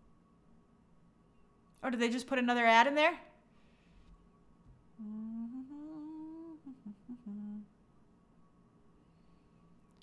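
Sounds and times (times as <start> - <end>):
woman humming softly: 5.0 - 7.8.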